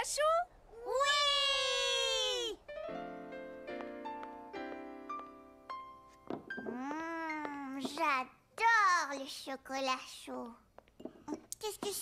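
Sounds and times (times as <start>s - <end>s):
child's long wordless ooh: 0.8s - 2.6s, 6.6s - 7.9s.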